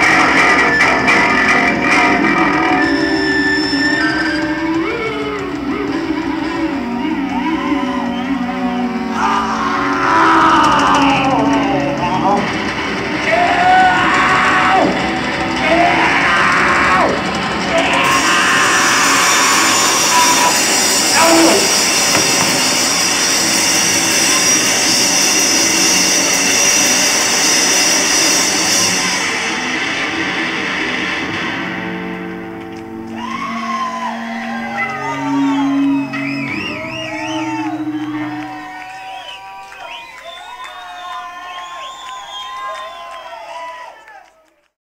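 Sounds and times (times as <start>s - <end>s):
audience whooping and shouting: 0.0s - 25.2s, 32.8s - 44.7s
distorted electric guitars: 0.0s - 39.9s
drums: 0.0s - 43.6s.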